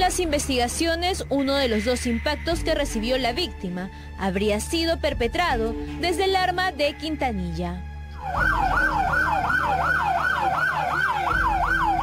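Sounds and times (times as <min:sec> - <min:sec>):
emergency siren yelping: 0:08.2 - 0:12.0.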